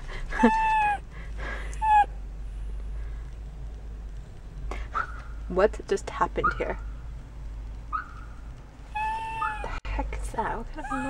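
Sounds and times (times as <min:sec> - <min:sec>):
dog whining: 0:00.3 - 0:01.0, 0:01.7 - 0:02.2, 0:08.9 - 0:09.8, 0:10.8 - 0:11.0.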